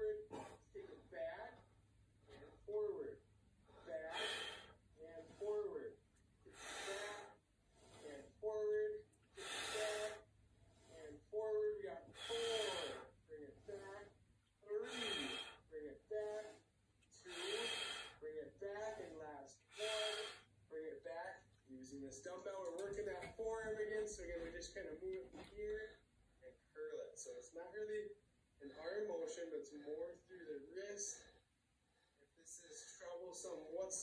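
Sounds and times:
man gasping breaths: 3.6 - 5.6, 6.5 - 8.2, 9.3 - 11.0, 12.1 - 14.0, 14.8 - 18.2, 18.8 - 20.5
man breathy voiced sounds: 3.7 - 5.6, 6.5 - 7.4, 9.4 - 10.2, 12.1 - 14.1, 14.8 - 15.6, 17.2 - 18.2.

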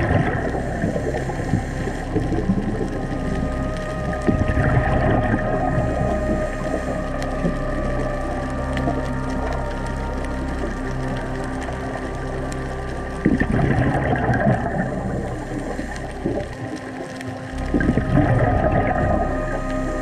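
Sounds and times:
rushing water underwater: 0.0 - 20.0.

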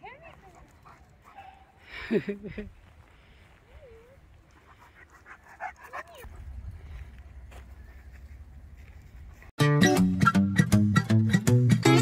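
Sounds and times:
dog panting: 0.4 - 1.8, 4.4 - 6.4.

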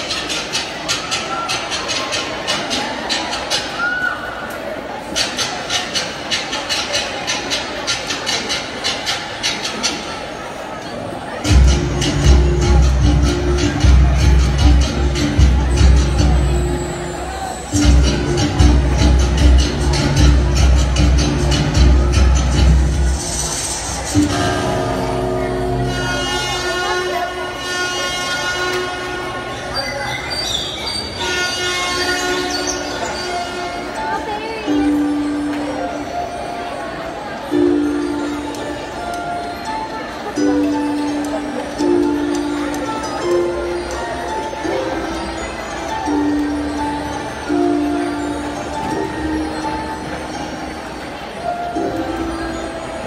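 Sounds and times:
blaring chords over loudspeakers: 11.4 - 30.4.

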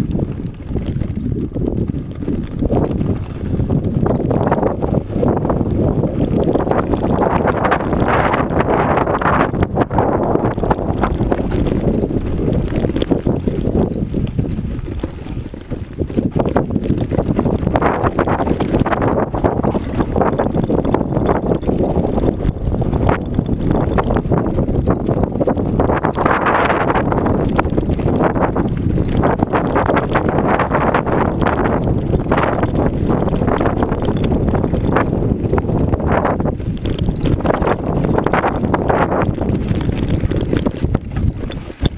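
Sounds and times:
rattle and knocks of bumpy ride: 0.0 - 41.9
wind buffeting microphone: 0.0 - 41.9.

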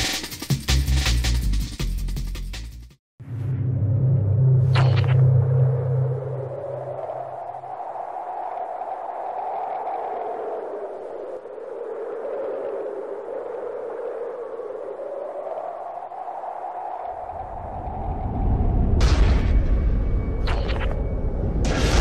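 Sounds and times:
low hum: 3.2 - 22.0.

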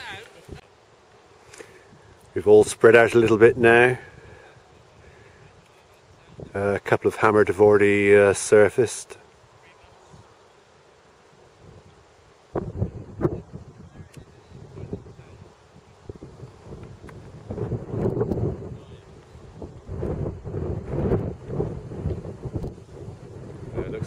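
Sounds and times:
wind buffeting microphone: 1.8 - 8.1, 11.5 - 24.0.

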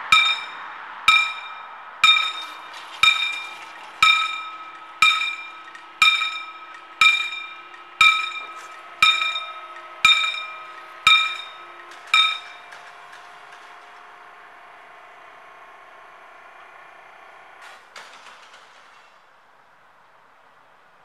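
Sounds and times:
level-crossing warning bell: 0.0 - 17.6.

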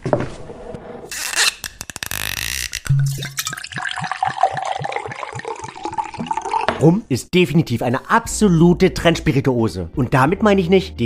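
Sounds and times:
liquid glugging from a bottle: 2.8 - 6.9.

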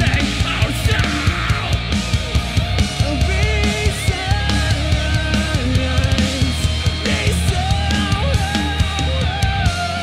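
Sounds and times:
heavy live band playing: 0.0 - 10.0.

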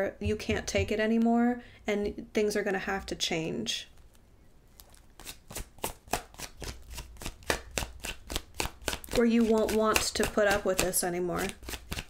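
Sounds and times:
cards being shuffled: 4.8 - 12.0.

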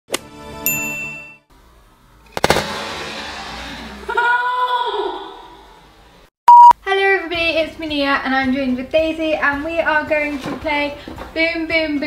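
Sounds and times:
ringing chime ding: 0.7 - 1.4.

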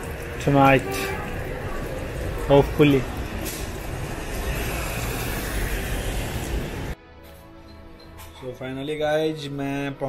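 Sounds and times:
traffic on wet roads: 0.0 - 7.0.

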